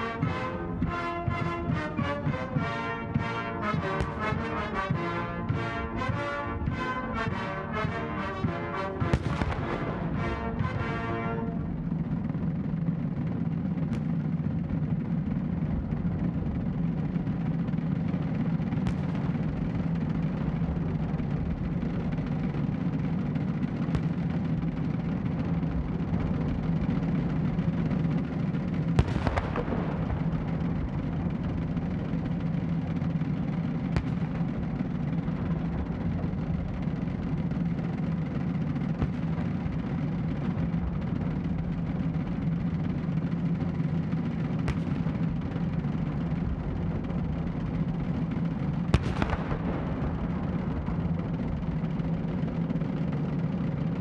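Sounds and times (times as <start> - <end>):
cannon shots: 0.0 - 54.0
steady low hum: 0.0 - 54.0.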